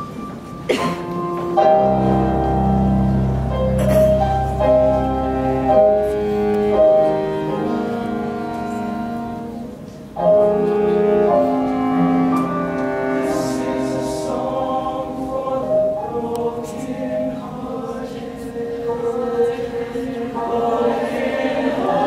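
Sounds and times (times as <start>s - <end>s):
mixed choir singing chords: 0.7s - 9.6s, 10.2s - 22.0s.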